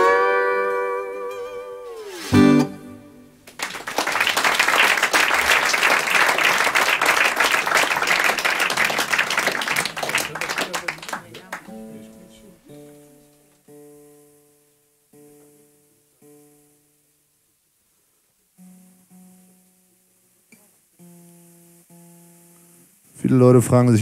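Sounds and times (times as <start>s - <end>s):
acoustic guitar notes ringing: 0.0s - 3.4s, 11.4s - 23.7s
applause: 3.4s - 11.8s.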